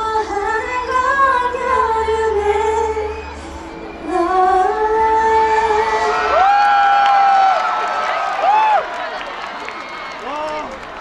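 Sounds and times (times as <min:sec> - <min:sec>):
women singing over dance track: 0:00.0 - 0:06.4
crowd cheering and screaming: 0:03.0 - 0:11.0.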